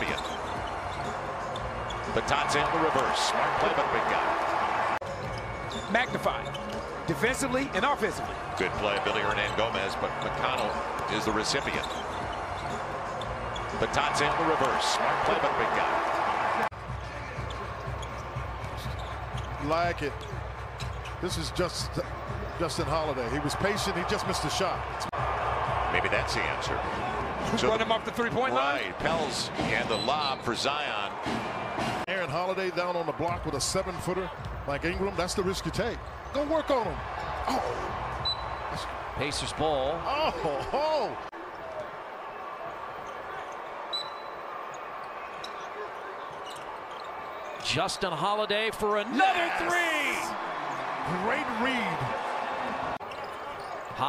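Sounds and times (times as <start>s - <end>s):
arena noise: 0.0s - 54.0s.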